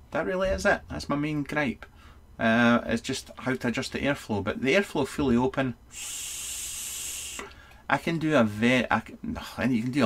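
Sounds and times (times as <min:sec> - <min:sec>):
airy hiss of vape draw: 0:05.9 - 0:07.5.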